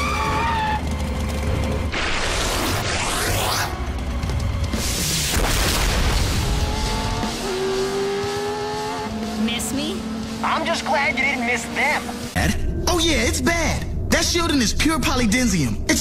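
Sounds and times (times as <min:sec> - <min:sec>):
car engine: 0:00.0 - 0:12.5
voices: 0:09.3 - 0:12.5.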